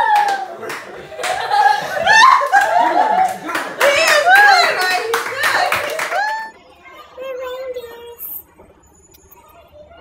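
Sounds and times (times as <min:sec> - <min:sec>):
people clapping: 0:00.0 - 0:06.6.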